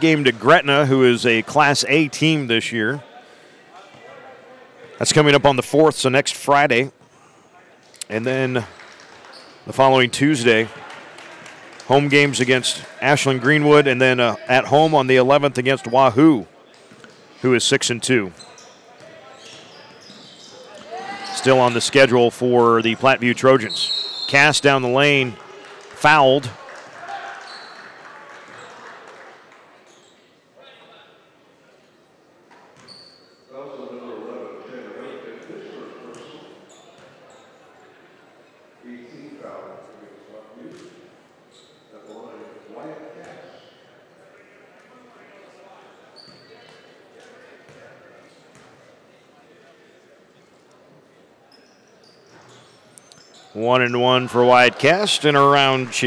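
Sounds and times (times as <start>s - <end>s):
spectators chattering: 0.0s - 26.8s, 52.7s - 56.0s
low crowd noise: 33.5s - 56.0s.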